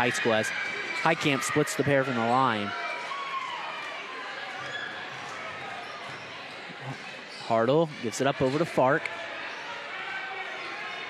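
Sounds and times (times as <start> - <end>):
crowd murmur in large hall: 0.0 - 11.0.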